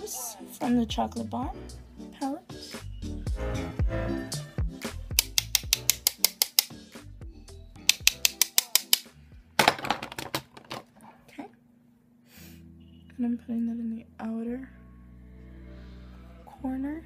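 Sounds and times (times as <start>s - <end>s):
background music: 0.0s - 9.8s, 12.4s - 17.0s.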